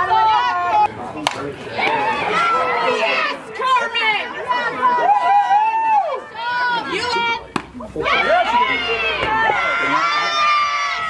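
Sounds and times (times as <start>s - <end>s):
players shouting and chanting: 0.0s - 11.0s.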